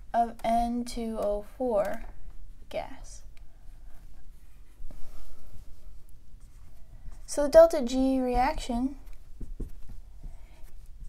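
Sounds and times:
marker writing on whiteboard: 8.0s - 11.0s.

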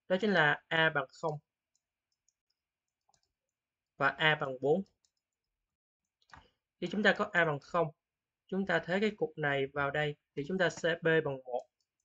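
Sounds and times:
person speaking: 4.0s - 5.0s, 6.8s - 11.8s.

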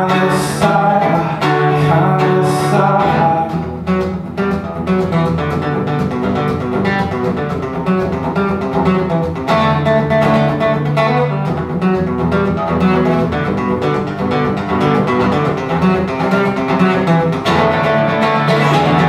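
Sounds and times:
acoustic guitar picking and strumming: 0.0s - 19.0s.

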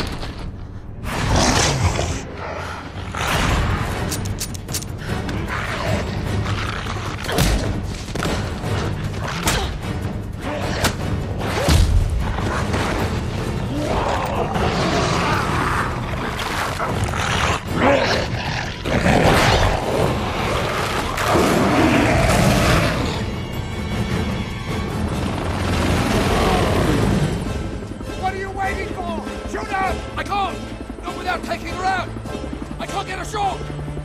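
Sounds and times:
dramatic film score: 0.0s - 34.0s.

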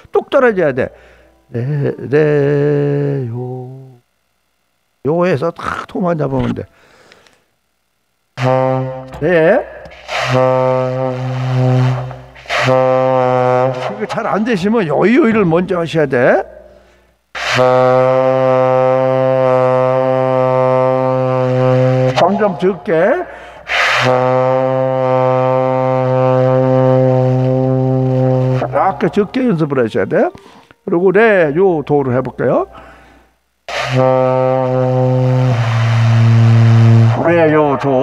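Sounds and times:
saxophone long low note: 1.5s - 4.0s, 8.4s - 15.4s, 17.4s - 29.5s, 33.7s - 38.0s.

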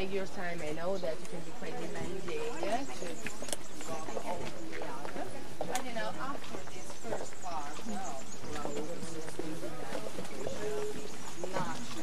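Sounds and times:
chatter of voices: 0.0s - 12.0s
shoes clicking on pavement: 0.0s - 12.0s.

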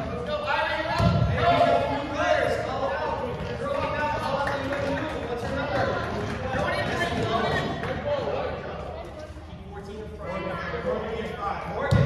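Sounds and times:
voices calling out in a gym: 0.0s - 12.0s.

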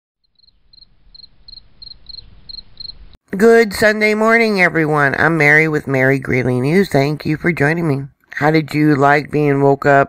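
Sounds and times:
insect chirping trills: 0.2s - 3.2s.

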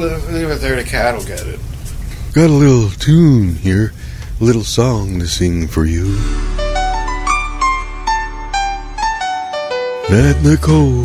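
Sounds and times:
keyboard notes stepping downward: 4.4s - 11.0s
held keyboard bass note: 5.9s - 11.0s.

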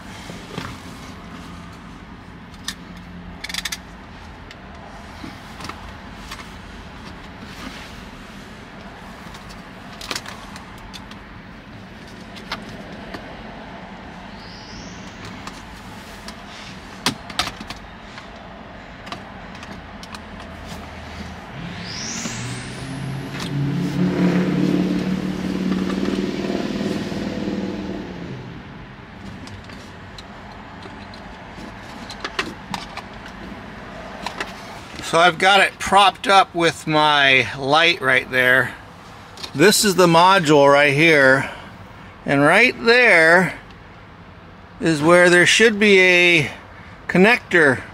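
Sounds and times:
vehicle engine: 0.0s - 47.9s.

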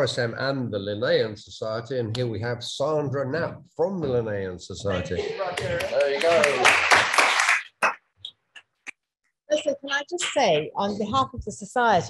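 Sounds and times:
applause: 5.6s - 8.0s.

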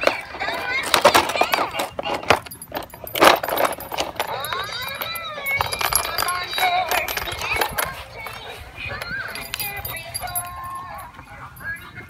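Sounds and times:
plastic toy clattering on concrete: 0.0s - 11.1s.

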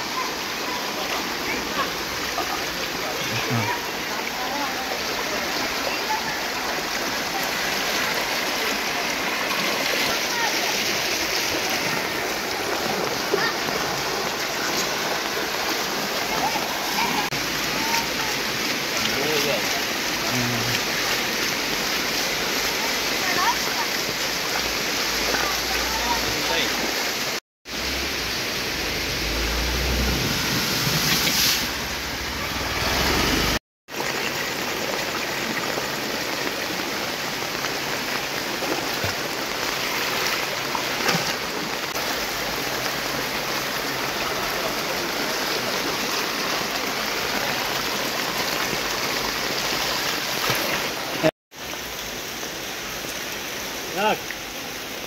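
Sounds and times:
floodwater rushing: 0.0s - 55.0s
heavy rain: 0.0s - 55.0s.

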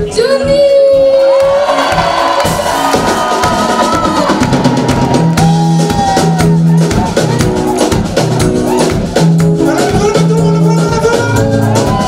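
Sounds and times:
bass guitar: 0.0s - 12.0s
drum kit beat: 0.0s - 12.0s
keyboards: 0.0s - 12.0s.

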